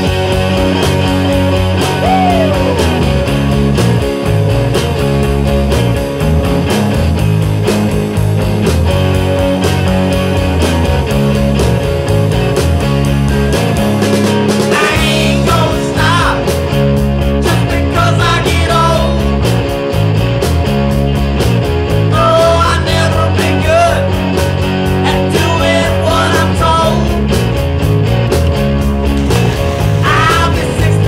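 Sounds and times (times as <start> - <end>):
rock music with guitar: 0.0 - 31.0.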